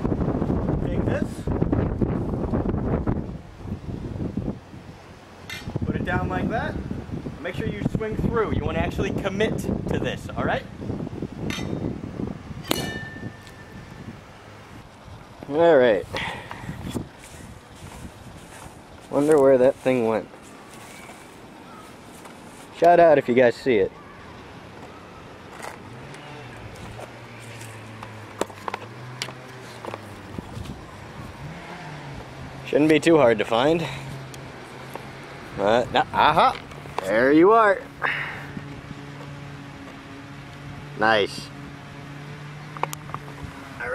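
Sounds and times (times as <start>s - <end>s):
vehicle engine hum: 0.0s - 43.9s
axe striking glass bottle: 12.6s - 13.7s
ringing tone: 12.6s - 14.0s
footsteps on dry grass: 16.8s - 22.8s, 26.7s - 30.8s.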